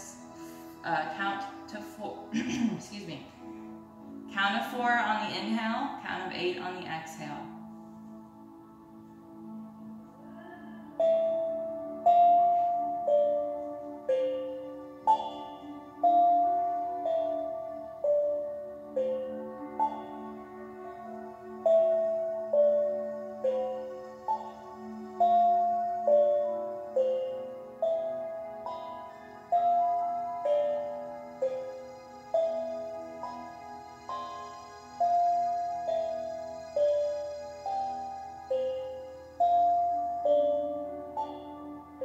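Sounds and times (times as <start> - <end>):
soft ambient background music: 0.0 - 42.0
steel tongue drum melody: 10.3 - 42.0.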